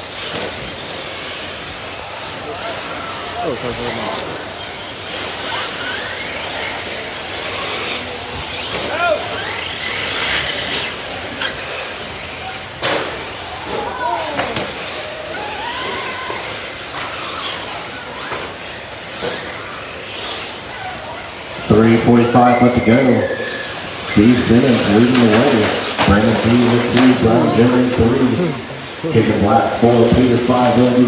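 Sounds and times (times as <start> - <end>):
rc buggy engines revving: 0.0 - 31.0.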